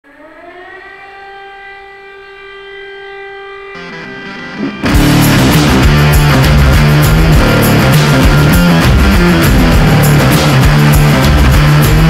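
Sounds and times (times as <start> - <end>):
siren-like wail: 0.0 - 7.0
lower chord-like sound: 0.3 - 12.0.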